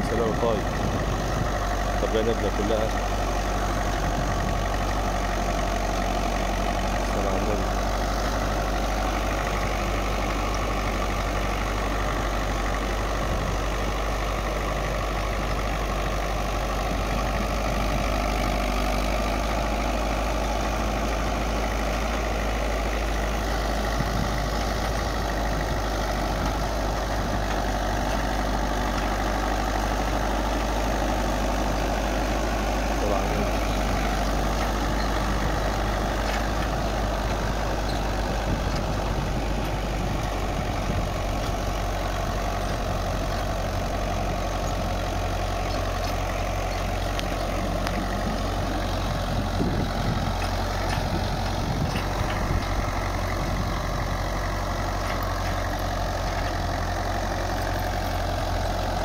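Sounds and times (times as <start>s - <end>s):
tractor diesel engine under load: 0.0s - 59.0s.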